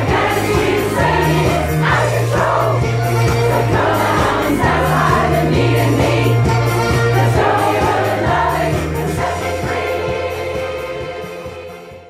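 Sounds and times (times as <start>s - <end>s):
choir singing pop-rock song: 0.0s - 12.0s.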